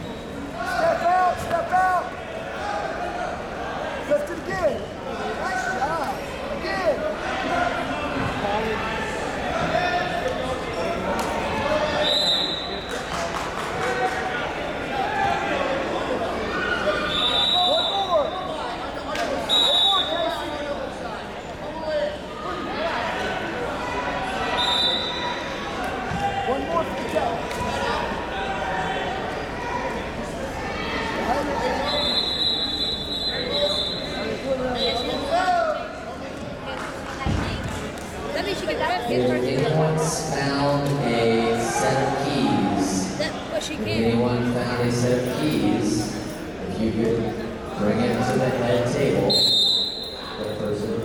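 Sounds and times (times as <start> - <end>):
faint chatter of people: 0.0 - 51.0
many people talking indistinctly: 0.0 - 51.0.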